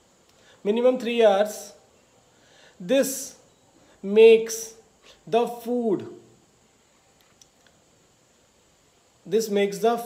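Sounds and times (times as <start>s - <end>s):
man speaking: 0.6s - 1.8s, 2.8s - 6.4s, 9.2s - 10.0s
faint short clicks: 7.2s - 7.8s.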